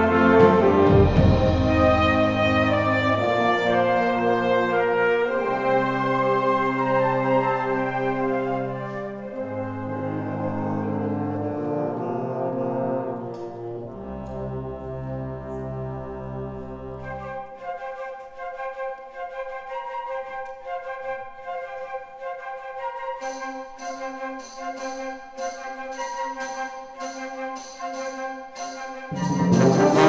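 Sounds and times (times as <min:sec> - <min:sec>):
brass chords: 0:00.0 - 0:17.1, 0:24.4 - 0:30.0
sustained low brass notes: 0:00.0 - 0:17.2, 0:29.1 - 0:30.0
woodwinds playing detached notes: 0:00.0 - 0:30.0.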